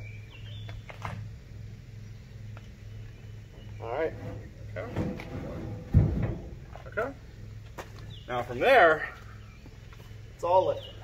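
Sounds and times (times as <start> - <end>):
heavy thump of steel truck bed: 4.0 - 6.8.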